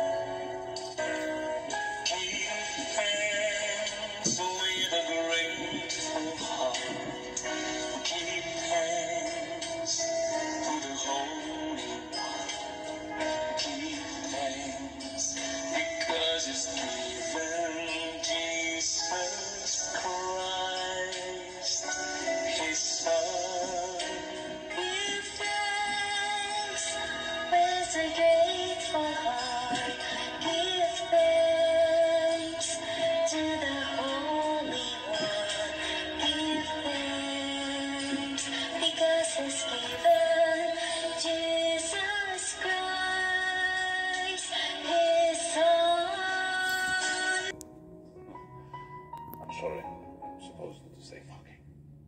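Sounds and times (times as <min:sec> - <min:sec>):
karaoke backing track: 0:00.0 - 0:51.6
man singing into a microphone: 0:02.0 - 0:47.5.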